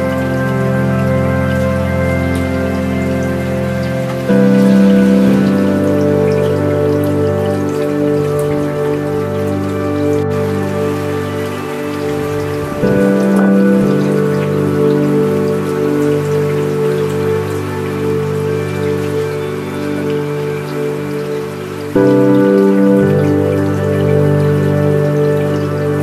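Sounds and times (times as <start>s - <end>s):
ambient music with held chords: 0.0s - 26.0s
steady rain falling: 0.0s - 26.0s.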